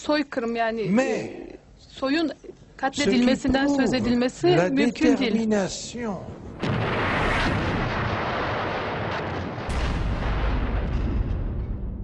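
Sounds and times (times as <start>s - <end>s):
deep low boom: 6.3s - 12.0s
gunfire and artillery: 6.5s - 12.0s
sharp gunshots: 6.5s - 12.0s.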